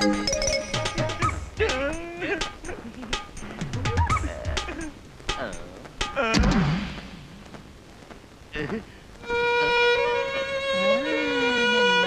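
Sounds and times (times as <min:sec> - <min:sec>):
percussive beat: 0:00.0 - 0:07.3.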